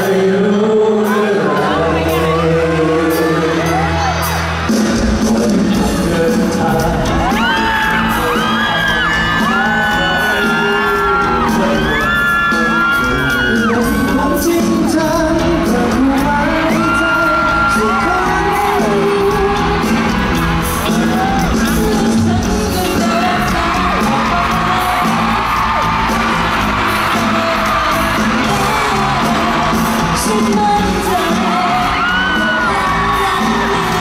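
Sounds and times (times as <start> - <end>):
band accompaniment: 0.0 - 34.0
group of singers singing pop song: 0.0 - 34.0.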